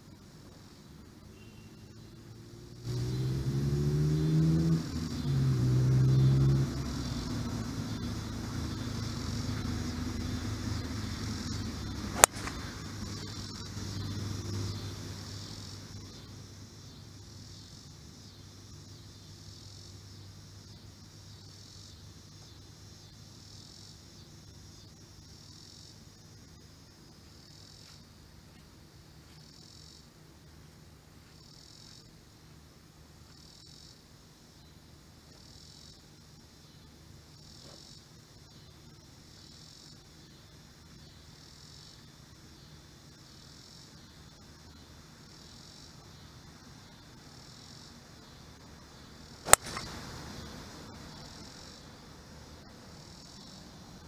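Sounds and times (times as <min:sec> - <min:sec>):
crickets chirping: 0:00.0 - 0:54.0
vehicle engine revving: 0:02.4 - 0:13.3
sharp crack: 0:12.1 - 0:12.7, 0:49.5 - 0:50.0.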